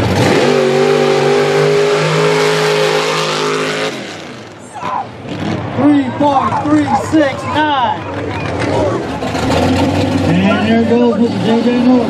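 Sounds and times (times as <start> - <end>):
truck engine at high revs: 0.0 - 12.0
announcer calling out: 5.8 - 9.0, 10.3 - 12.0.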